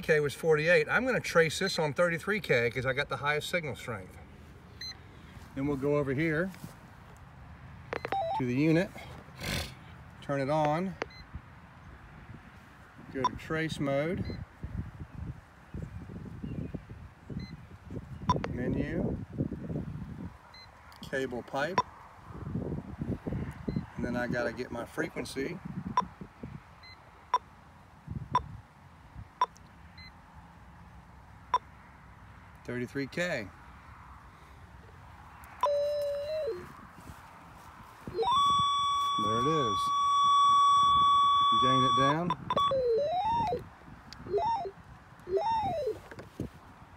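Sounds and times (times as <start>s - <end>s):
button presses knocking: 8.0s - 8.4s
short faint beep: 8.0s - 8.4s, 35.6s - 36.7s, 38.2s - 43.6s
cable locator tone sweeping: 8.0s - 8.5s, 35.6s - 36.7s, 38.2s - 43.6s, 44.3s - 46.0s
wind rumble on microphone: 11.1s - 27.0s, 27.9s - 29.4s, 34.9s - 46.9s.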